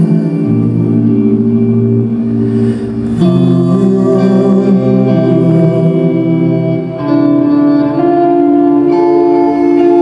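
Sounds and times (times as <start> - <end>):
band playing droning chord: 0.0 - 10.0.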